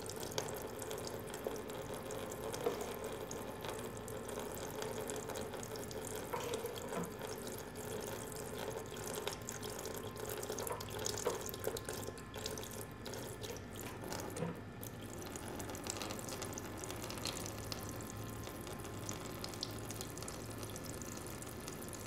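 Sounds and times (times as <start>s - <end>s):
juice trickling into liquid: 0.0s - 22.0s.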